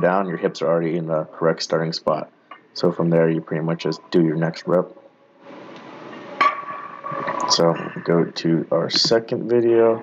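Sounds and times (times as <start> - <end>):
gym background noise: 5.5 - 10.0.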